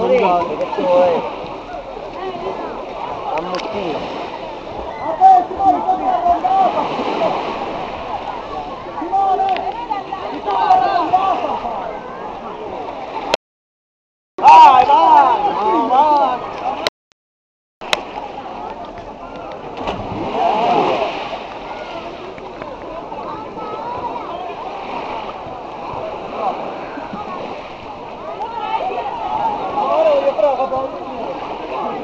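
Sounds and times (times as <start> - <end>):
people's voices: 0.0 - 13.4, 14.4 - 16.9, 17.8 - 32.0
water splashing: 0.0 - 13.4, 17.8 - 32.0.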